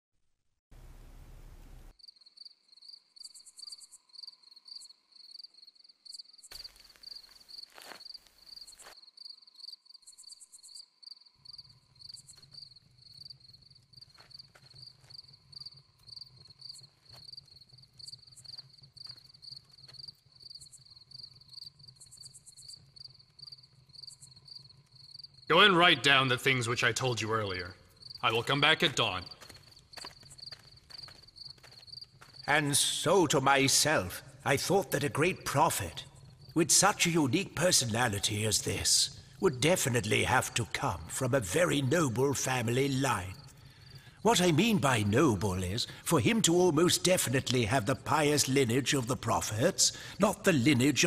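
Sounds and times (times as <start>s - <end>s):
faint low hum: 0.7s - 1.9s
crickets chirping: 0.9s - 51.0s.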